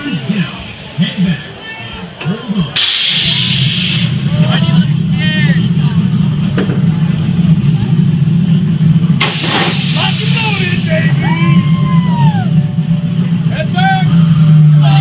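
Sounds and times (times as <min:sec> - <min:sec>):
loud steady low hum: 0:00.0 - 0:15.0
pneumatic air hiss: 0:02.8 - 0:04.2, 0:09.2 - 0:10.5.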